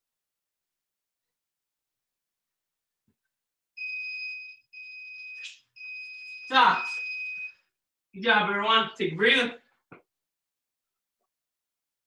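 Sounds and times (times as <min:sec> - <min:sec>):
electronic timer beeps: 0:03.8 - 0:07.6.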